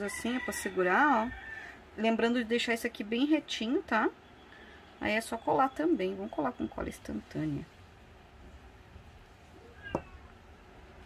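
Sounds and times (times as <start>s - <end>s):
faint room noise: 0.0s - 11.0s
high meow-like animal call: 9.6s - 10.4s.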